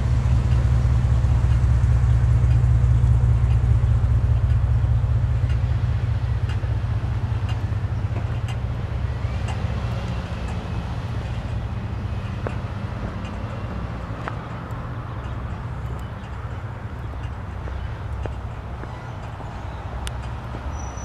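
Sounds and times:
vehicle engine idling: 0.0 - 21.0.

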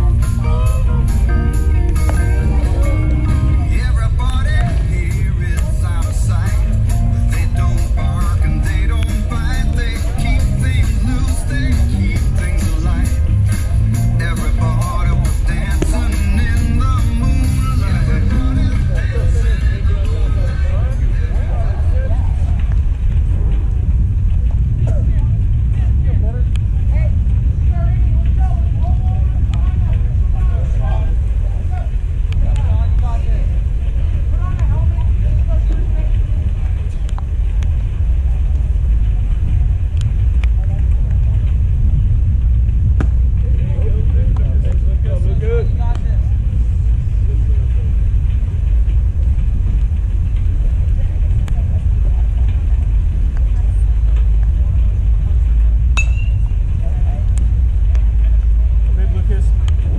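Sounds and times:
faint voices calling: 0.0 - 38.8
wind buffeting microphone: 0.0 - 59.9.

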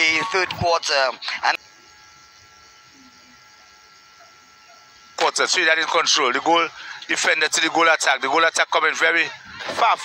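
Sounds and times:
thin steady tones: 0.0 - 10.0.

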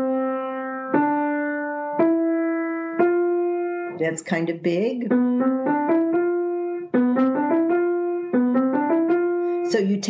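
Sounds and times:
piano single notes rising: 0.0 - 9.8.

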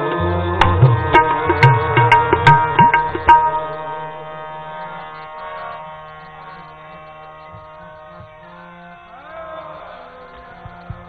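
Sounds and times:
drone of held notes: 0.0 - 11.0.

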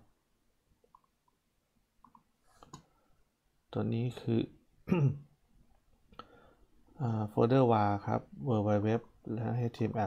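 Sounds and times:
man speaking: 3.7 - 5.2, 7.0 - 10.0.

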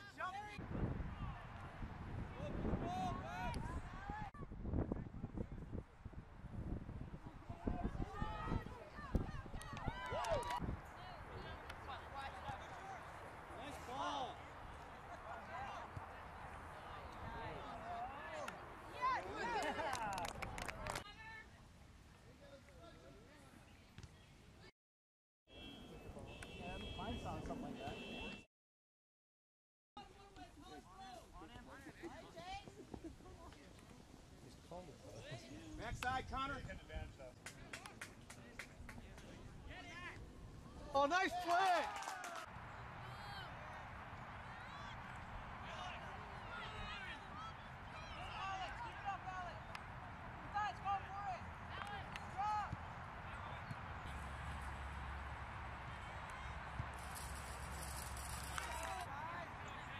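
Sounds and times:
open-air background noise: 0.0 - 24.7, 30.0 - 59.9
spectators shouting and cheering: 7.5 - 10.6, 40.8 - 57.4.

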